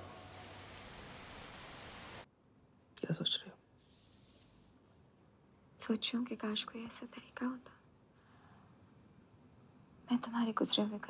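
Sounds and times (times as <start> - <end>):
faint room hiss: 0.0 - 11.0
woman whispering: 5.9 - 7.8.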